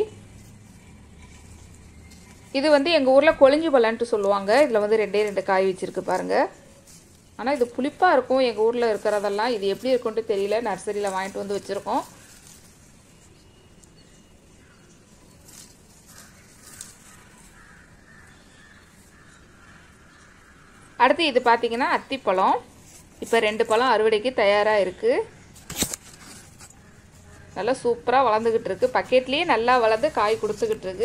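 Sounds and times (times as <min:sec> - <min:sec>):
plant leaves rustle with click: 0:00.0 - 0:24.8, 0:25.5 - 0:31.0
woman speaking: 0:02.5 - 0:06.6, 0:07.4 - 0:12.2, 0:21.0 - 0:25.4, 0:27.4 - 0:31.0.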